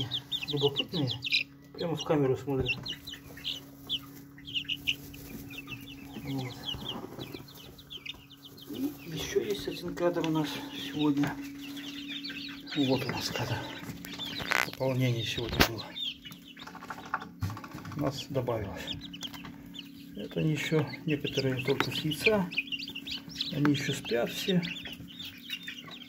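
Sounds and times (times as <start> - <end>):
chicks peeping: 0.0 - 26.0
steady low hum: 0.0 - 26.0.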